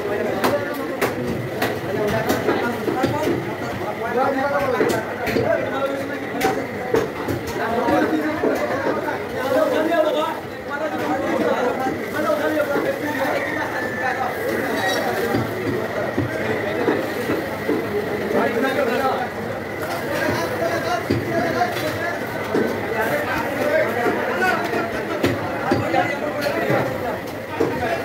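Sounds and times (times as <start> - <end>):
people chattering: 0.0 - 28.0.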